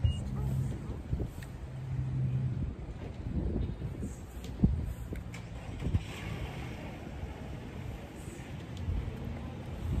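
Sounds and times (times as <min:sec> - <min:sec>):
car rumbling: 0:00.0 - 0:10.0.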